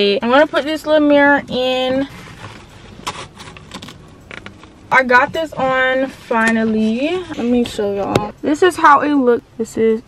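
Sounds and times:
rustling of plastic and straps: 0:01.9 - 0:07.7.

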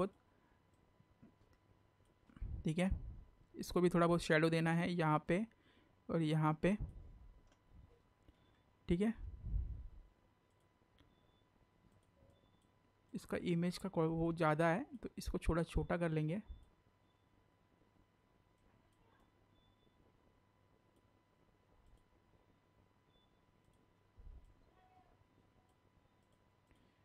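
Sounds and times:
faint computer mouse clicks: 0:10.4 - 0:11.2, 0:25.6 - 0:27.0.

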